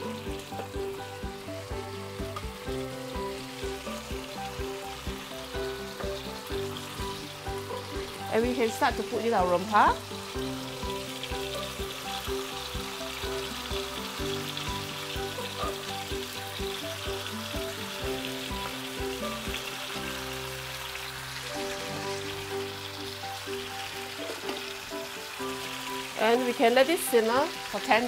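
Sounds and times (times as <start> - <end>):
spice paste sizzling in oil: 0.0 - 28.0.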